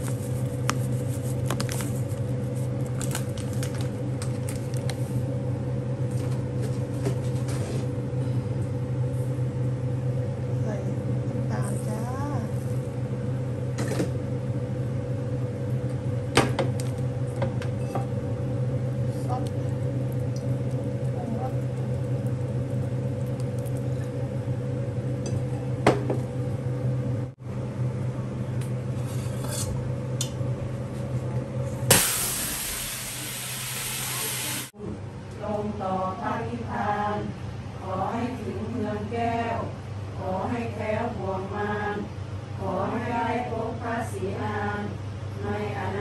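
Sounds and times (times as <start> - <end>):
low mechanical hum: 0.0 - 46.0.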